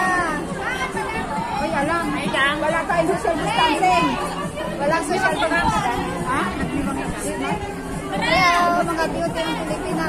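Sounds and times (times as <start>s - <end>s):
women chattering: 0.0s - 10.0s.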